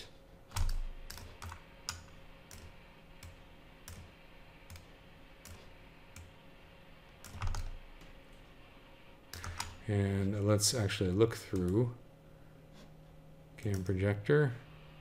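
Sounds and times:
keyboard and mouse clicks: 0.5 - 6.3, 7.2 - 8.1, 9.3 - 9.8.

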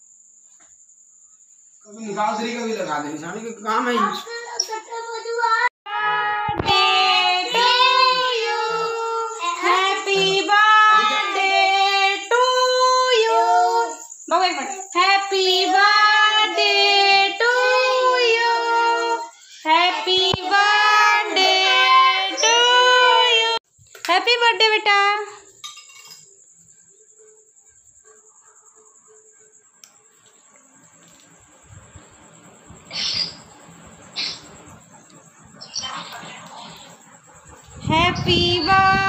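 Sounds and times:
children singing: 5.9 - 14.0, 15.0 - 23.6.

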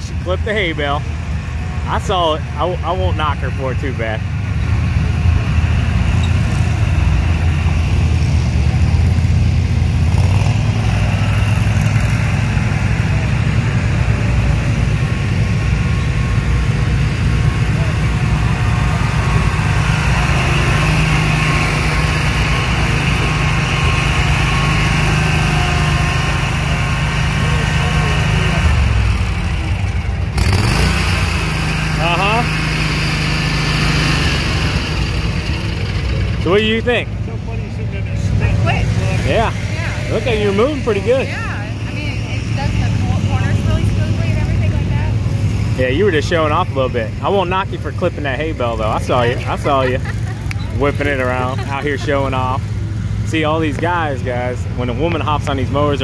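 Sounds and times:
lawn mower engines running: 0.0 - 56.0.

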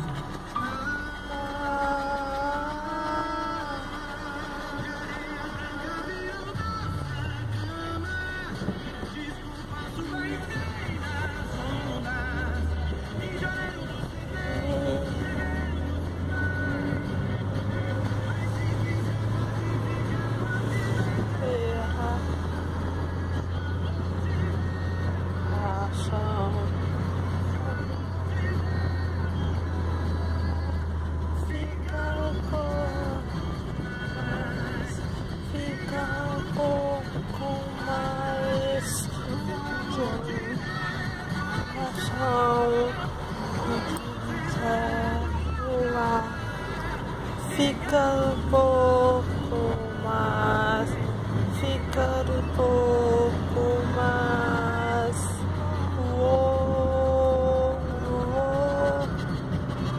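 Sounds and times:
car driving drone: 0.0 - 59.9
song on car stereo: 0.0 - 59.9.

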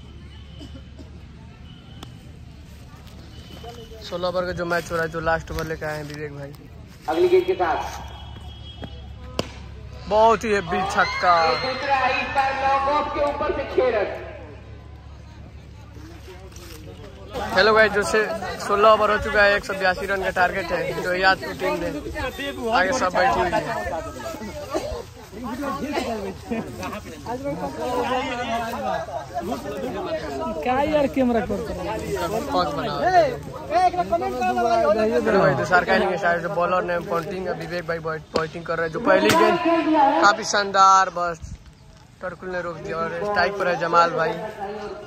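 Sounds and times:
men chattering in a group: 2.7 - 8.2, 9.0 - 45.0
cricket bat striking ball: 8.8 - 9.7.

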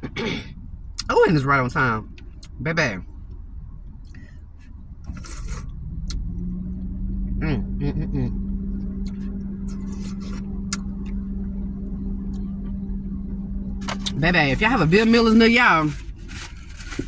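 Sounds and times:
car engine humming: 0.0 - 17.0
person humming: 7.4 - 8.4.

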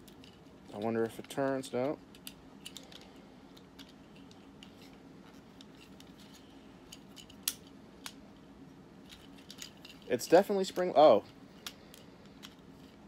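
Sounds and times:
steady low hum: 0.0 - 13.0
plastic toy clicking and rattling: 9.1 - 10.1.

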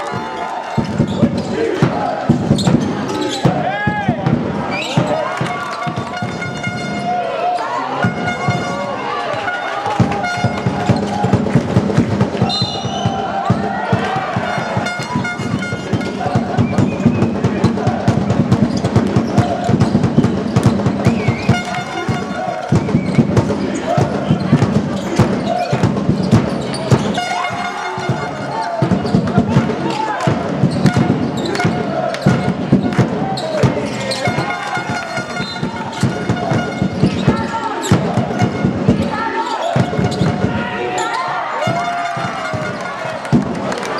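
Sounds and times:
crowd voices: 0.0 - 43.9
basketball bouncing: 0.1 - 7.0, 9.8 - 27.4, 28.0 - 40.6
sneakers squeaking on court: 2.4 - 3.6, 24.2 - 27.3, 35.3 - 38.0
horn held tone: 8.0 - 10.7, 34.3 - 37.1.

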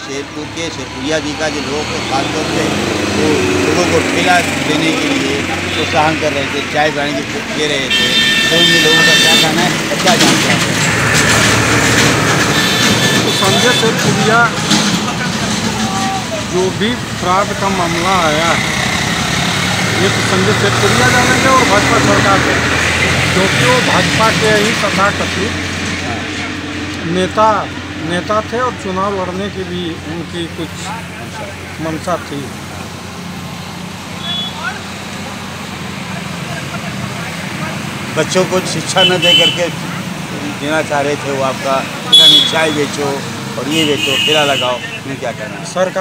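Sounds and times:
man speaking: 0.0 - 10.5, 19.9 - 25.6, 27.0 - 32.6, 40.4 - 46.0
road traffic: 0.0 - 46.0.

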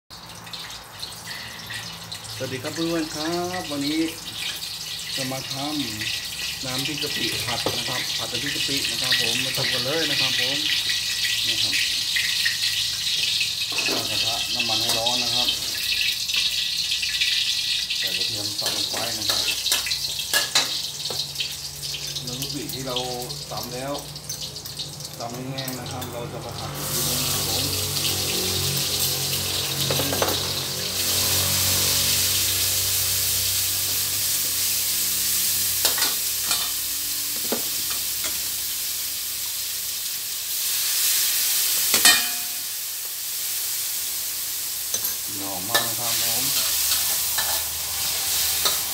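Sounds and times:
oil hissing in a wok: 0.5 - 48.9.

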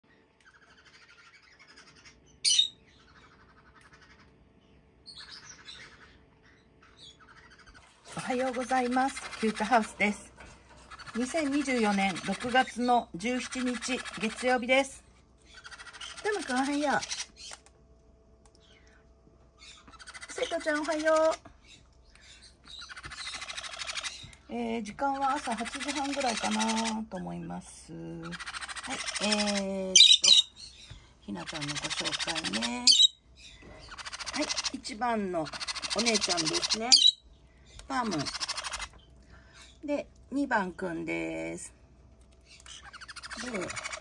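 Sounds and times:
parrots chattering and chirping: 0.0 - 40.7, 41.6 - 44.0.

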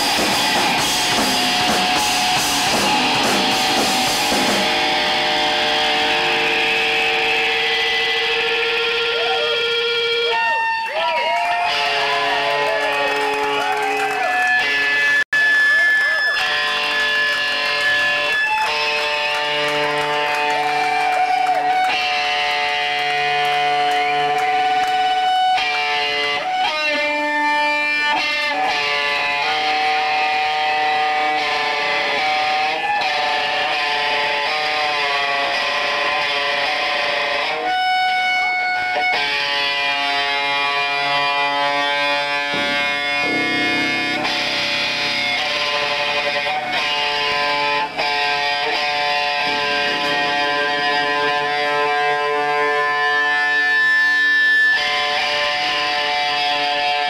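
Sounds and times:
electric guitar bending notes: 0.0 - 57.0
live rock band: 0.0 - 57.0.

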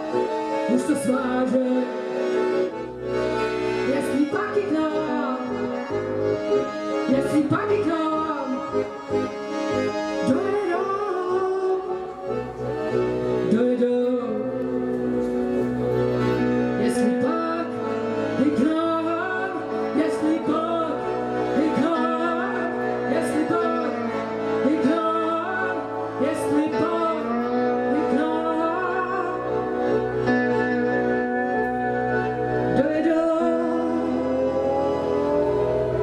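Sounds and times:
live band music: 0.0 - 36.0.

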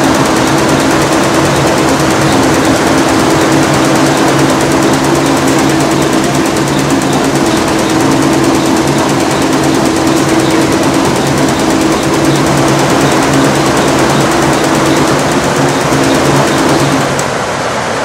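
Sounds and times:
embroidery machine clattering: 0.0 - 17.4
mechanical hum: 0.0 - 18.0.

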